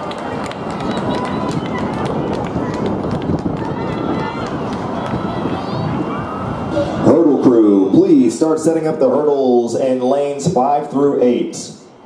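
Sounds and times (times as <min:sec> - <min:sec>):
spectators talking and calling out: 0:00.0 - 0:12.0
steady rushing background noise: 0:00.0 - 0:12.0.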